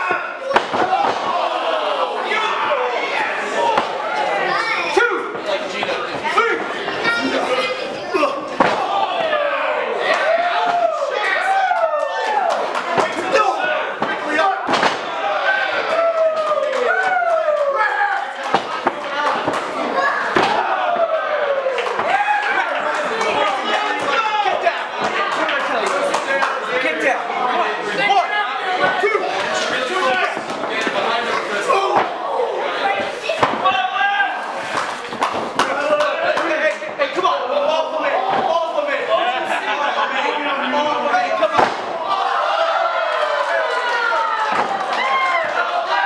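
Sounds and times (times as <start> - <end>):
spectators calling out and chattering: 0.0 - 46.0.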